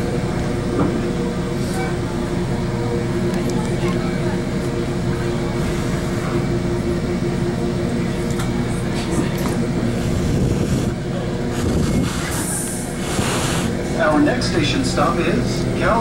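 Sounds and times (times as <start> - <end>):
train rumbling on rails: 0.0 - 16.0.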